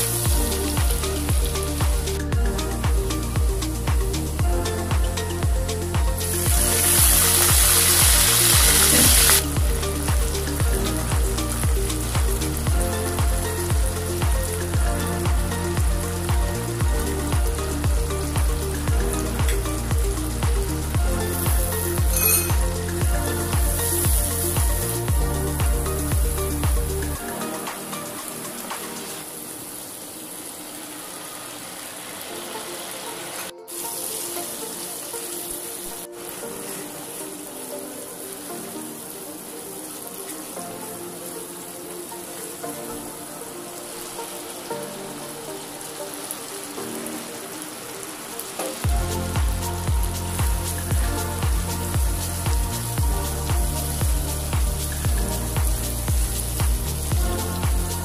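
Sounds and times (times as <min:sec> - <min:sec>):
background music with beat: 0:00.0 - 0:29.7, 0:32.4 - 0:58.0
oil hissing and spitting: 0:05.1 - 0:37.5, 0:48.2 - 0:58.0.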